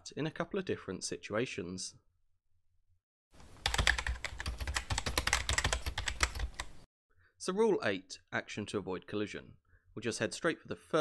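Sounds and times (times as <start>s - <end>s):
keyboard typing clicks: 3.4s - 6.8s.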